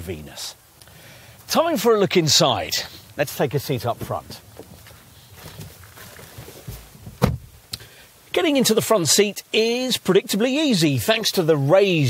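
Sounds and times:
person shuffling into car seat: 3.8s - 7.5s
soft low thump: 6.6s - 7.6s.

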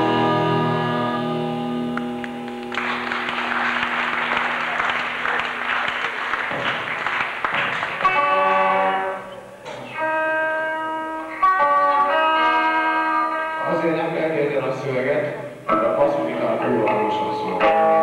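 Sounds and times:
electric guitar chords: 0.0s - 5.4s, 7.6s - 18.0s
audience applause: 2.0s - 9.2s.

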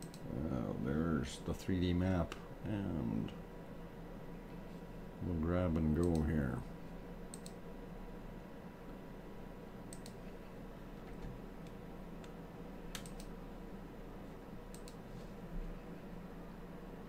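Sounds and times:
computer mouse clicks: 0.0s - 0.2s, 7.3s - 7.6s, 9.9s - 10.3s, 11.6s - 13.3s, 14.7s - 15.0s
low electrical hum: 0.0s - 17.0s.

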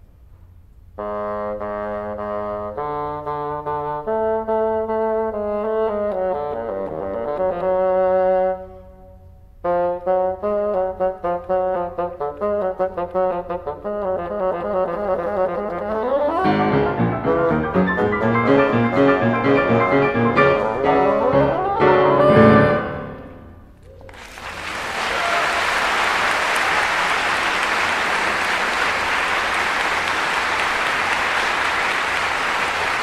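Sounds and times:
bassoon: 1.0s - 23.8s
piano: 9.6s - 24.3s.

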